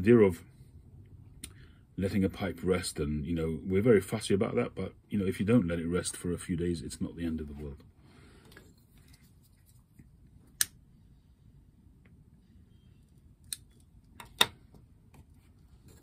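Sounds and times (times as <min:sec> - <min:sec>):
faint room noise: 0:00.0 - 0:16.0.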